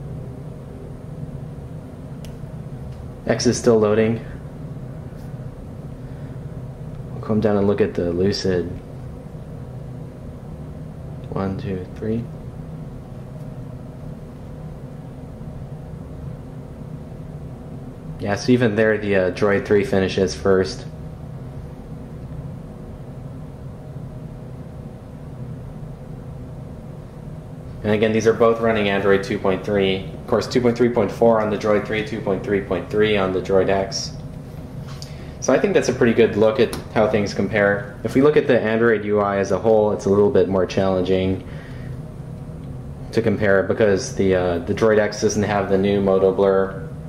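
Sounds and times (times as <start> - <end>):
low room hum: 0.0 - 47.0.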